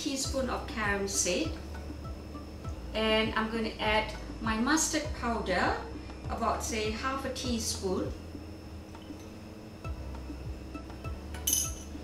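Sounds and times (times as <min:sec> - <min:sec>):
background music with steady beat: 0:00.0 - 0:12.0
metal spoon clinking on steel bowl: 0:11.4 - 0:12.0.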